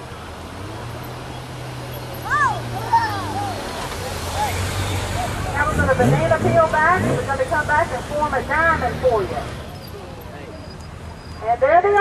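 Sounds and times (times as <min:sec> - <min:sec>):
motorcycles riding past: 0:00.5 - 0:09.8.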